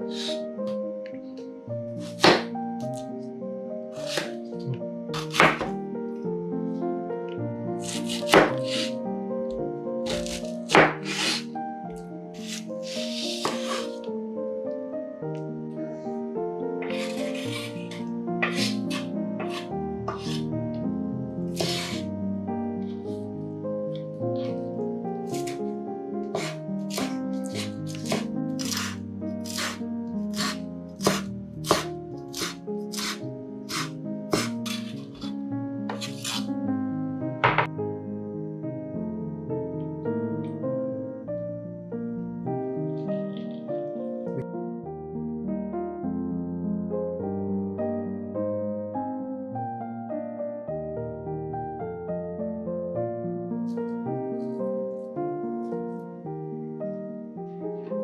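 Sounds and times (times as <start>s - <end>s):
background music: 0.0s - 58.0s
knife cutting onion on board: 2.0s - 3.0s, 4.0s - 4.4s, 5.2s - 5.7s, 7.8s - 9.0s, 10.1s - 11.5s, 12.4s - 14.0s, 16.8s - 20.5s, 21.6s - 22.1s, 25.3s - 25.6s, 26.3s - 35.3s, 35.9s - 36.5s.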